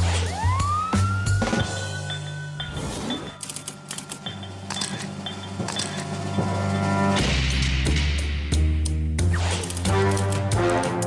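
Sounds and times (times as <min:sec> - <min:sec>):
police siren: 0:00.0 - 0:02.3
background music with steady beat: 0:00.0 - 0:11.0.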